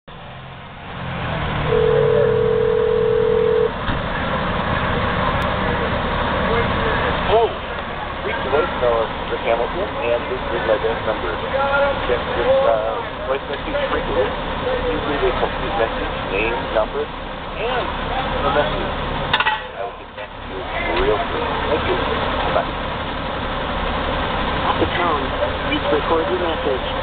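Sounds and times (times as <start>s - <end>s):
fire engines idling: 0.1s - 27.0s
telephone ring tone: 1.7s - 3.7s.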